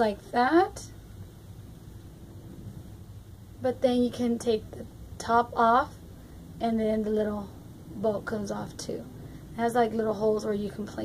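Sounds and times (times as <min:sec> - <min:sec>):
room noise rumble and hiss: 0:00.0 - 0:11.0.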